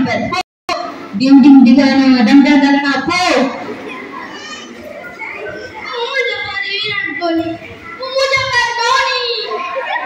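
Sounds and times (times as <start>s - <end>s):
children chattering in a hall: 0.0s - 10.0s.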